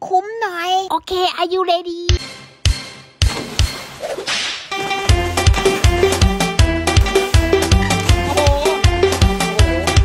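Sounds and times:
music with a beat: 0:04.7 - 0:10.0.

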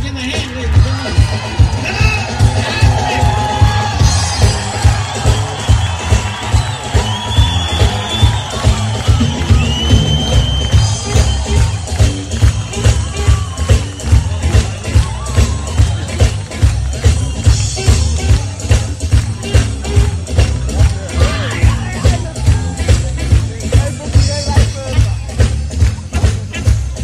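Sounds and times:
crowd cheering: 0:00.0 - 0:27.0
electric blues band playing: 0:00.0 - 0:27.0.

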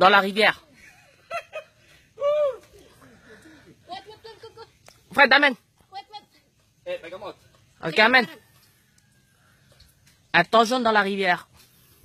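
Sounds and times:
people exclaiming: 0:02.2 - 0:03.0.

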